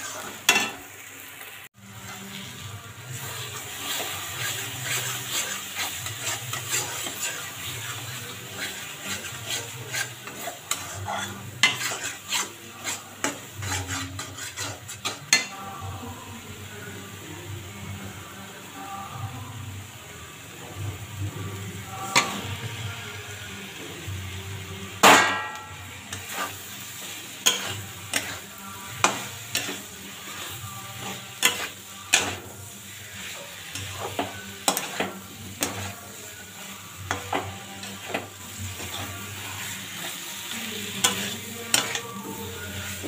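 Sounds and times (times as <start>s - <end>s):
metal spatula scraping pan: 0.0s - 0.8s, 2.0s - 15.6s, 25.1s - 43.0s
paste sizzling: 0.0s - 17.0s, 21.5s - 43.0s
metal spatula clanking on pan: 25.0s - 25.8s.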